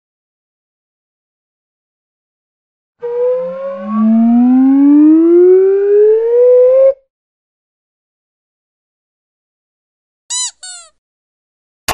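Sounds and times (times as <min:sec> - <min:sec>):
higher tone: 0:03.0 - 0:06.9
siren-like wail: 0:03.0 - 0:07.0.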